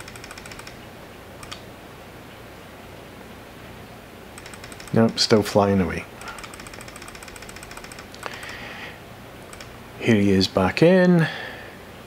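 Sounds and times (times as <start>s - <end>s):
computer keyboard clicking: 0.0s - 0.8s, 1.4s - 1.6s, 4.4s - 5.4s, 6.2s - 8.6s, 9.5s - 9.8s.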